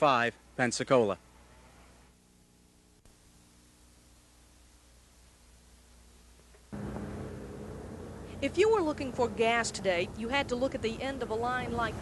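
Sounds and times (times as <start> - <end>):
faint tape hiss: 0.0 - 11.8
outdoor background noise with hum: 0.0 - 12.0.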